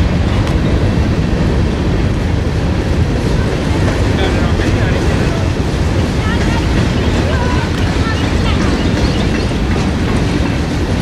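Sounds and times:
freight train wheels rumbling on track: 0.0 - 11.0.

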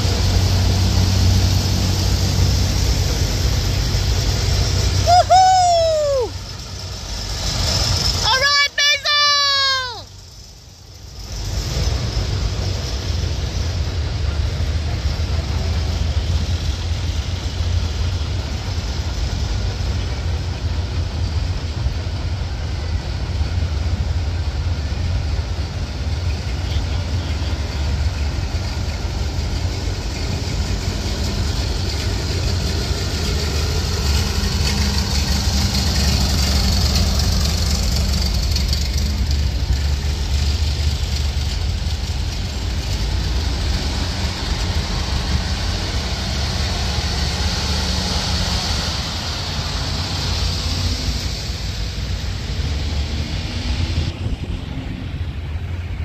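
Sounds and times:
diesel truck engine rumble: 0.0 - 56.0
tractor engine: 0.0 - 56.0.

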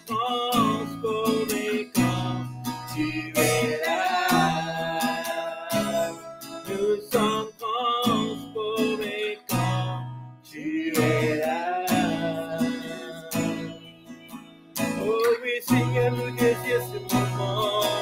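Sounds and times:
woman and man singing: 0.0 - 9.7, 10.5 - 13.8, 15.0 - 18.0
acoustic guitar strumming: 0.0 - 18.0.

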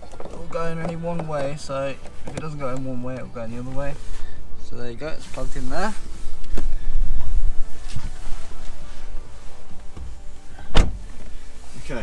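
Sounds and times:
sharp loud thump: 10.7 - 11.1.

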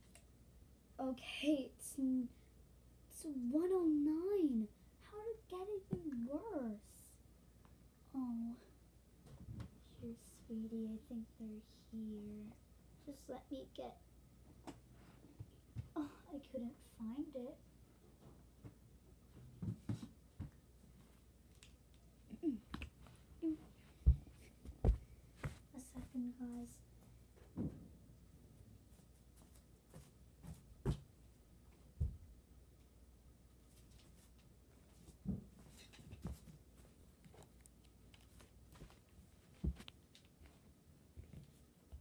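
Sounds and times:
soft knocks and handling: 35.0 - 40.6.

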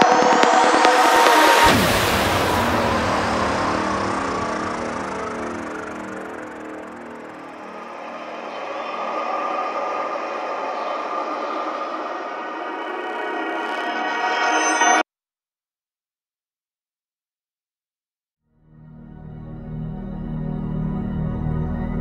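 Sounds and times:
kick drum and bassline: 0.0 - 6.8
falling synth sweep: 0.0 - 15.0
sustained synth pad chords: 0.0 - 15.0
wash of noise: 0.5 - 14.4.

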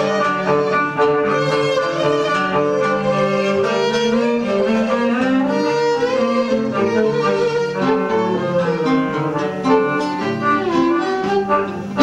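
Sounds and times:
violin and strings playing: 0.0 - 12.0.

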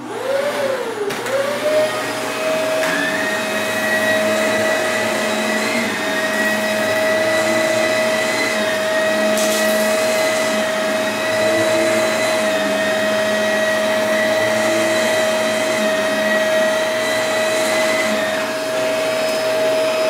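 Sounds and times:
vacuum cleaner motor whine: 0.0 - 20.0.

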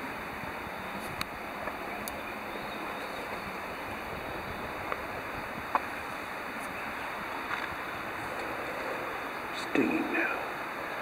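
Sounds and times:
outdoor rushing noise: 0.0 - 11.0.

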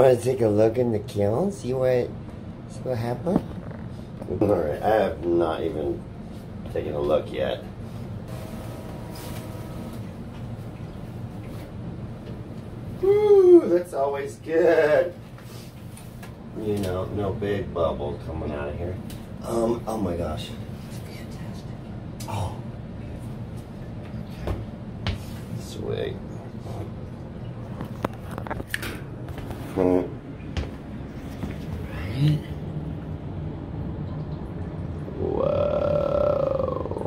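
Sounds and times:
low rumbling hum: 0.0 - 37.0.

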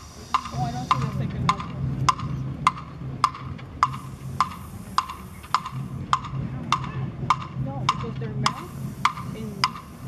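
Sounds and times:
woody percussion clicks: 0.3 - 10.0.

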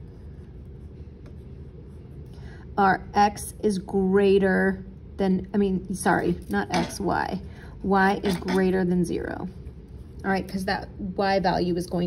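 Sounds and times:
pencil scratching on paper: 0.0 - 2.2
low background rumble: 0.0 - 12.0.

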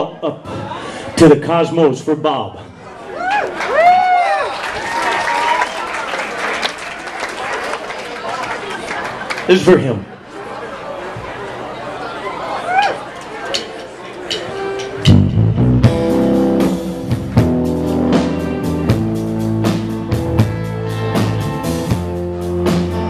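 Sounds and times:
audience voices: 2.6 - 15.2
rock band playing slow song: 14.3 - 23.0.

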